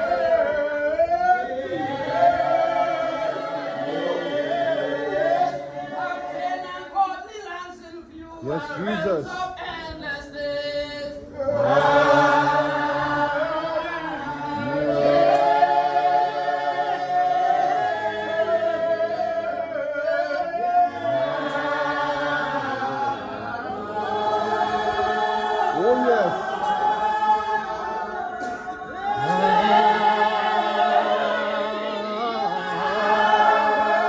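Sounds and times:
congregation singing a hymn: 0:00.0 - 0:34.0.

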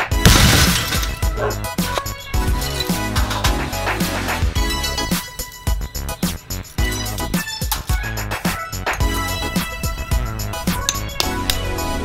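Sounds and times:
background music with steady beat: 0:00.0 - 0:12.0
glass shattering: 0:00.2 - 0:01.4.

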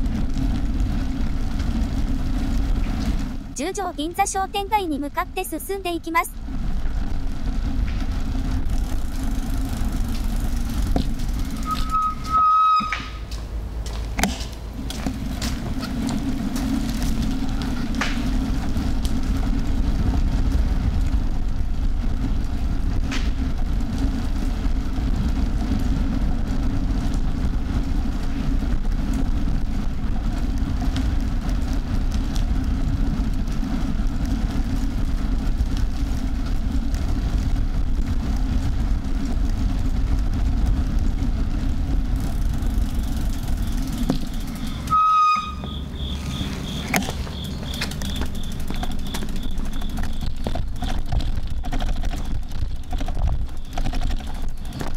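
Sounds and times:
bicycle riding rumble: 0:00.0 - 0:54.9
short high beep: 0:11.6 - 0:13.1.

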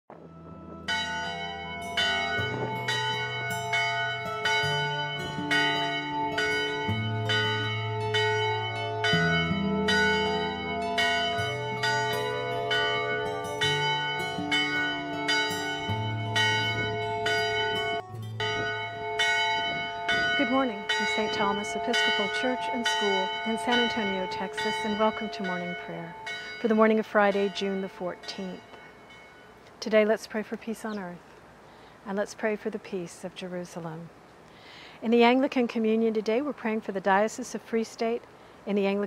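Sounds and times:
low sustained tones: 0:00.1 - 0:29.6
church bell ringing: 0:00.1 - 0:29.7.

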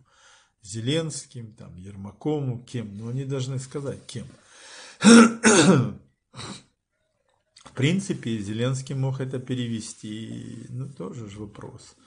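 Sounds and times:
man clearing his throat: 0:05.0 - 0:06.7.

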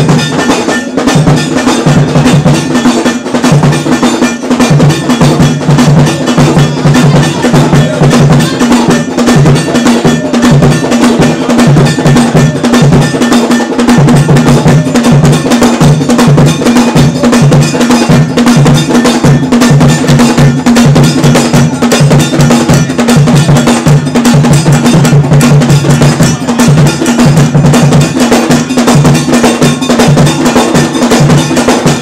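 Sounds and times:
iron bell ringing pattern: 0:00.0 - 0:32.0
low drum beats: 0:00.0 - 0:32.0.

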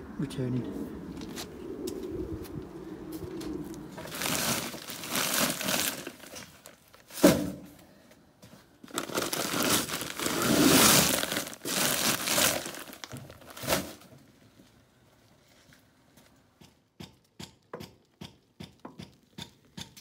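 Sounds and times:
rubble scraping and crunching: 0:03.7 - 0:07.2, 0:08.9 - 0:14.1.

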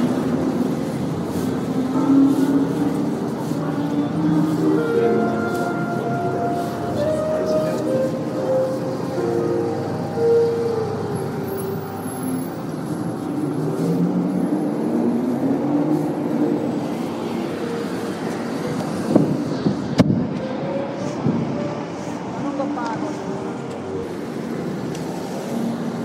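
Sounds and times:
held musical tones: 0:00.0 - 0:14.4
steady traffic-like noise: 0:00.0 - 0:26.0.

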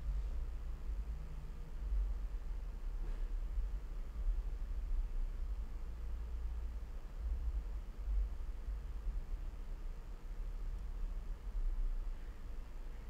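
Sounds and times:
steady low rumble: 0:00.0 - 0:13.0.

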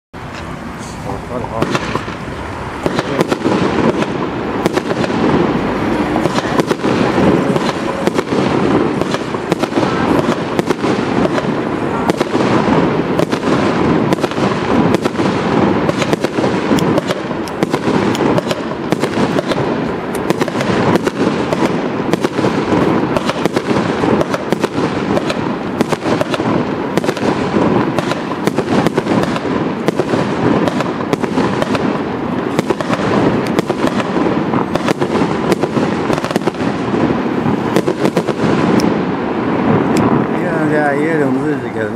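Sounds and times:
fireworks popping and banging: 0:00.2 - 0:41.9.

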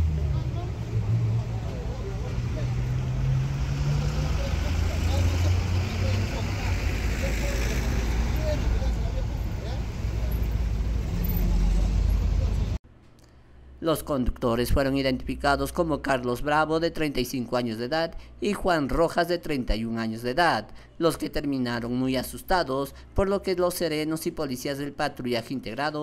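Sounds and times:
indistinct voices: 0:00.0 - 0:12.8
low vehicle engine rumble: 0:00.0 - 0:12.8
traffic noise: 0:00.0 - 0:12.8.

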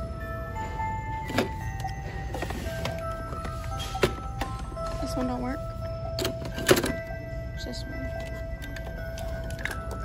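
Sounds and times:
plastic handset clacks: 0:08.1 - 0:10.0.

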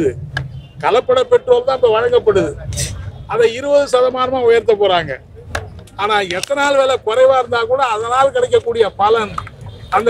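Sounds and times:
man speaking loudly: 0:00.8 - 0:05.2, 0:06.0 - 0:10.0.

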